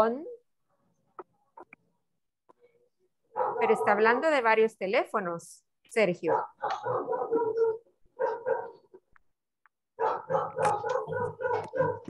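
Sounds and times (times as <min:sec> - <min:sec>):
dog barking rapidly: 0:03.3 - 0:04.2, 0:06.2 - 0:08.9, 0:10.0 - 0:12.0.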